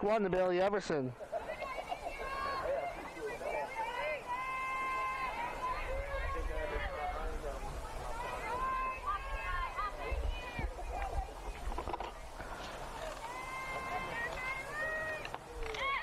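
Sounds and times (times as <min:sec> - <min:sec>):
players calling out: 0:01.1 - 0:11.4, 0:12.3 - 0:16.0.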